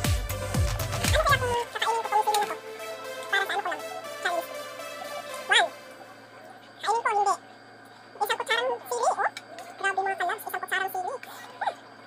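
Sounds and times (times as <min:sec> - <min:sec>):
high-pitched gliding voice: 0:01.1 - 0:07.4.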